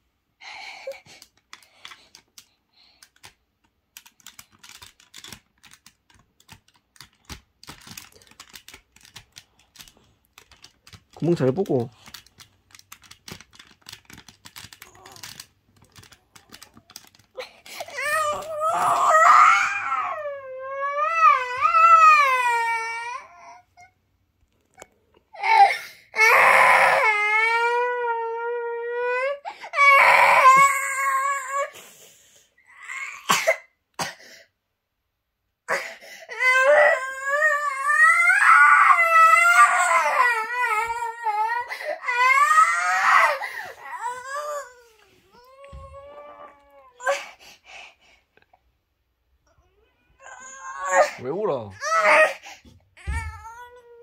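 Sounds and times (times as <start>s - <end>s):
young child crying: 17.4s - 23.6s, 36.4s - 47.3s, 49.7s - 52.4s, 53.0s - 54.0s.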